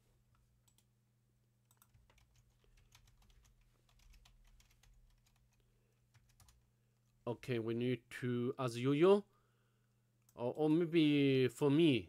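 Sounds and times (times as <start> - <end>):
keyboard typing: 1.7 - 6.6.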